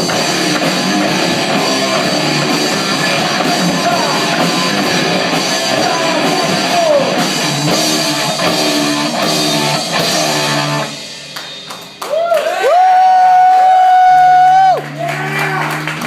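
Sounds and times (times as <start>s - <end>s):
rock band playing: 0.0s - 16.0s.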